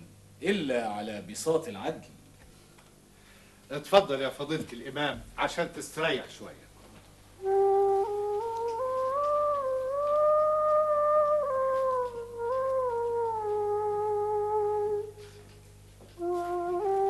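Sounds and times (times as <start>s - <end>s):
slow flute melody: 7.4s - 17.0s.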